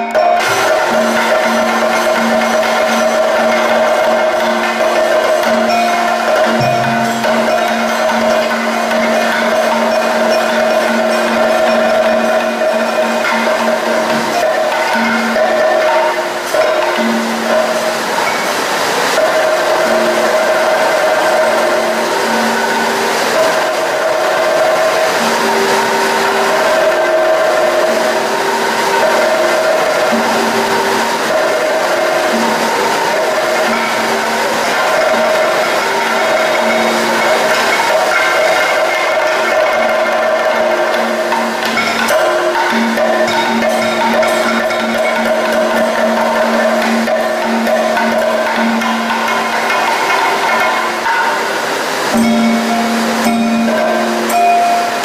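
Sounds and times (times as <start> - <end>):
steady percussion: 0.0 - 55.0.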